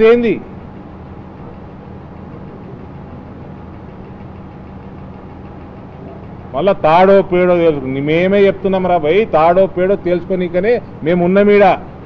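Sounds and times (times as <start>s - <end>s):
engine idling hum: 0.0s - 12.0s.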